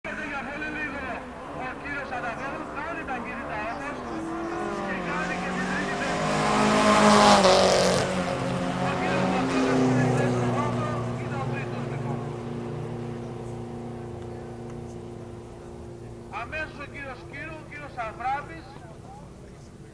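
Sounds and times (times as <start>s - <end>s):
drag cars accelerating hard: 0.1s - 18.0s.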